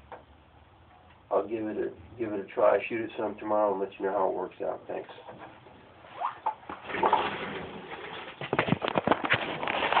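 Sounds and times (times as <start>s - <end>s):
camera handling rustling and scraping: 8.2s - 10.0s.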